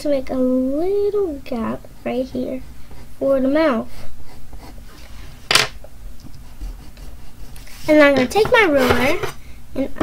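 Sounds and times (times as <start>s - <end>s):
hands rustling drawing paper: 6.2s - 8.9s.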